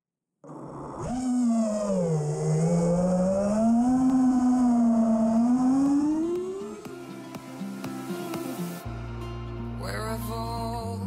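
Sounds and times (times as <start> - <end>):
drone motors whining: 0.4 - 8.7.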